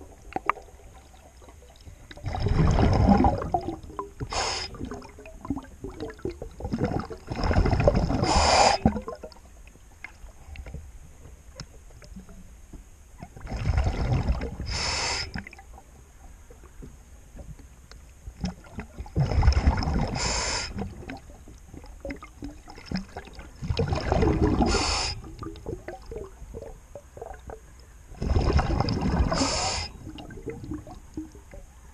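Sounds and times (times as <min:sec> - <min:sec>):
quiet bubbling and crackle: 0:00.0 - 0:31.9
exhaled bubbles bursting: 0:01.7 - 0:09.4, 0:13.2 - 0:14.7, 0:18.4 - 0:27.6, 0:28.2 - 0:31.6
diver breathing through regulator: 0:04.2 - 0:04.8, 0:08.2 - 0:08.9, 0:14.6 - 0:15.4, 0:20.1 - 0:20.8, 0:24.5 - 0:25.3, 0:29.3 - 0:30.1.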